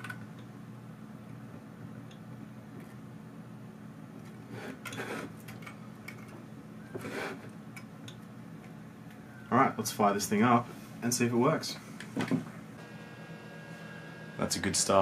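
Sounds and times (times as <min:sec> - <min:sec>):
low steady hum: 0:00.0 - 0:15.0.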